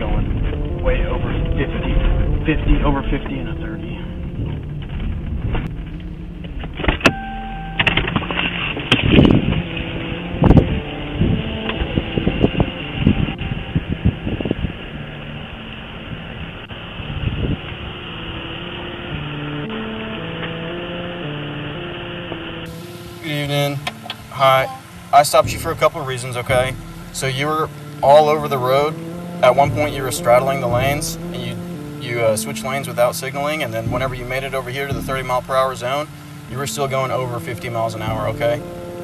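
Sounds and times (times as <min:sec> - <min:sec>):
in-car noise: 0:00.0 - 0:39.0
two-pitch beep: 0:07.0 - 0:08.1.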